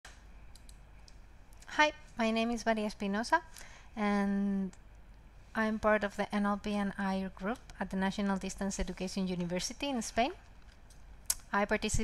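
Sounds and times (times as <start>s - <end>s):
faint clicks: 0.1s - 1.7s
low steady hiss: 0.1s - 12.0s.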